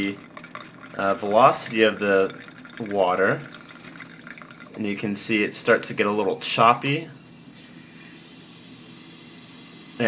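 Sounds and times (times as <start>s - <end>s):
faucet running into metal sink: 0.0s - 10.0s.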